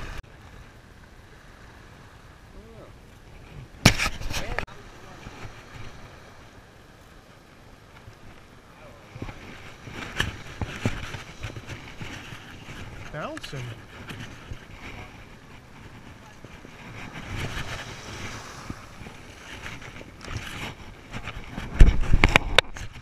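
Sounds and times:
small waves washing: 0:00.0 - 0:23.0
wind on microphone: 0:08.2 - 0:23.0.

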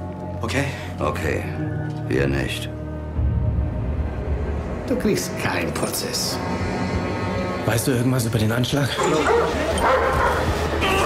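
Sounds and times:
steady low drone: 0:01.4 - 0:08.7
dogs barking: 0:09.0 - 0:11.0.

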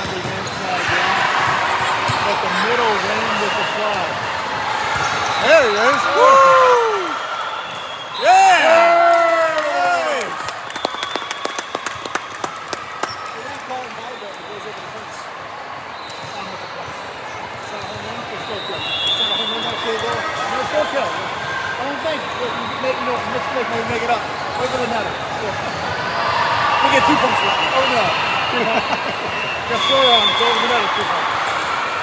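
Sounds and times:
murmur of voices in echoing hall: 0:00.0 - 0:08.4, 0:09.4 - 0:32.0
girls cheering shouts: 0:06.0 - 0:07.2.

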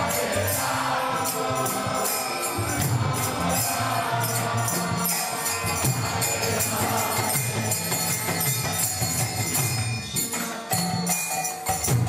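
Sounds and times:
hand cymbals struck: 0:00.0 - 0:12.0.

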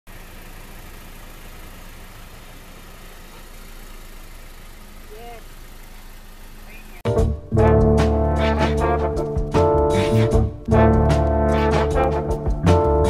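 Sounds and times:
car engine idling: 0:00.1 - 0:13.0.

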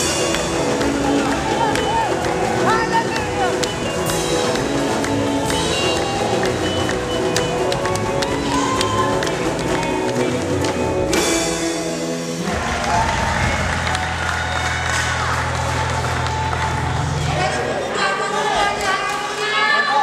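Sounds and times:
low bass notes: 0:00.0 - 0:17.9.

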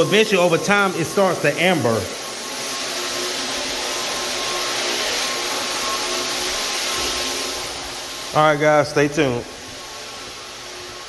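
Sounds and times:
floor buffer whirring: 0:00.0 - 0:11.0.

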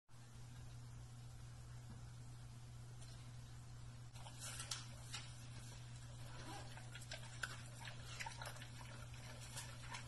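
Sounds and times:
steady low hum: 0:00.1 - 0:10.0
dog chewing wet food: 0:04.2 - 0:10.0.

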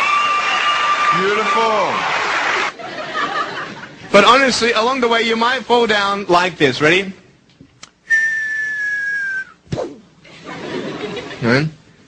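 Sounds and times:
clean whistle: 0:08.1 - 0:09.8.

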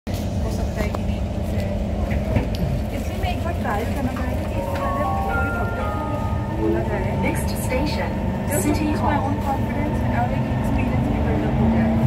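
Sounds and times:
passengers chatting: 0:00.1 - 0:12.0
steady tones: 0:04.5 - 0:08.8.

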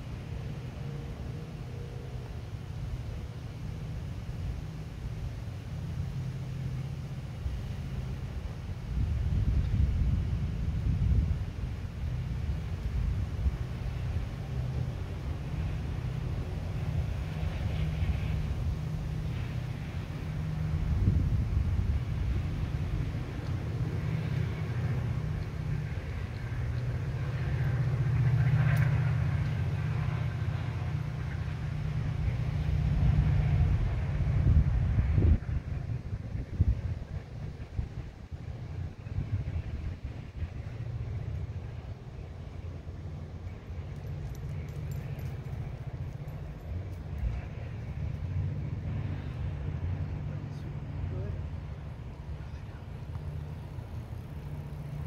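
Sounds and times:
low rumble of road traffic: 0:00.0 - 0:55.0
faint light ticks: 0:23.4 - 0:23.6, 0:25.4 - 0:25.6, 0:28.7 - 0:29.6.

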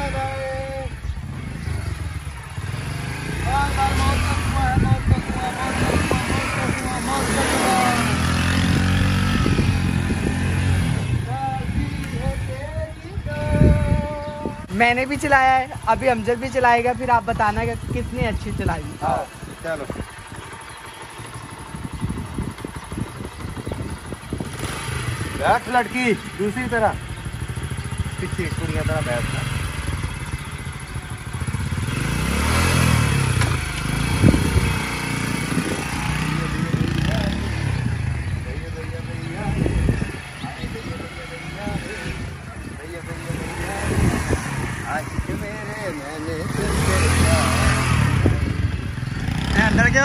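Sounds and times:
motorcycle engine running: 0:00.0 - 0:50.0
voices calling out: 0:00.0 - 0:50.0.

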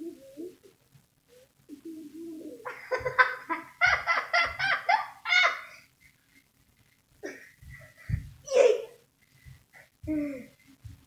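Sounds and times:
child laughing and squealing: 0:04.9 - 0:05.8.

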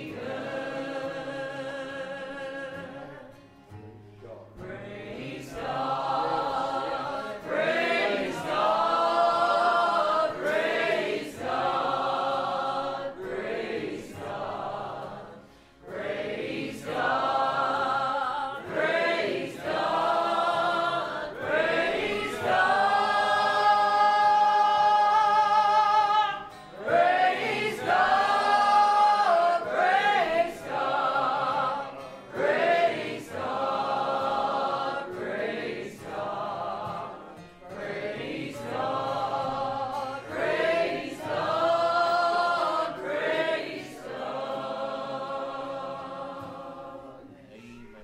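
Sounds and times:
congregation singing: 0:00.0 - 0:48.0.

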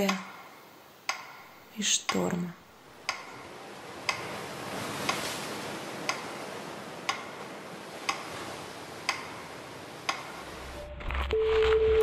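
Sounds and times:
clock ticking: 0:00.0 - 0:03.5, 0:06.0 - 0:06.4, 0:07.1 - 0:07.4, 0:08.1 - 0:08.3, 0:09.1 - 0:09.4, 0:10.1 - 0:10.4.

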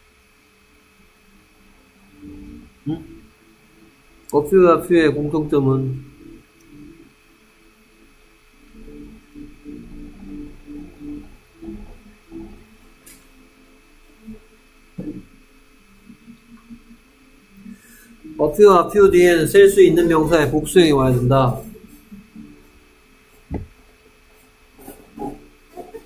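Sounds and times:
faint muffled voice: 0:02.8 - 0:03.2.

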